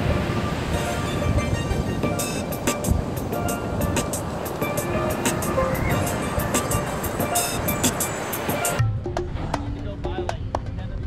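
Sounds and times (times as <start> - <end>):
steel pan notes: 0.0 - 9.0.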